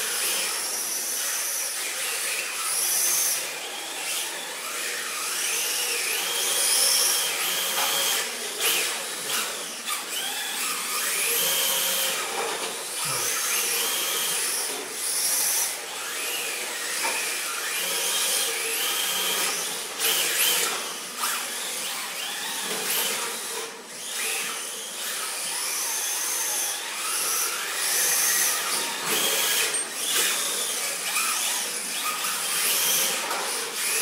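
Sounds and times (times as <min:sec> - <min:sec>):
electric motors whining: 0:00.0 - 0:34.0.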